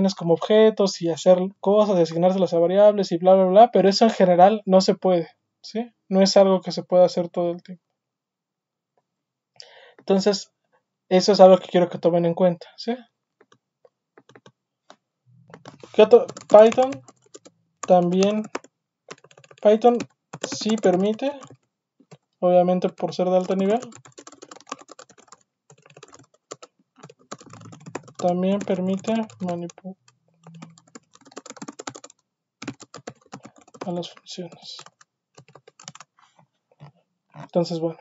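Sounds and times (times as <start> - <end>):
computer keyboard typing: 14.2 - 14.6, 15.4 - 36.1.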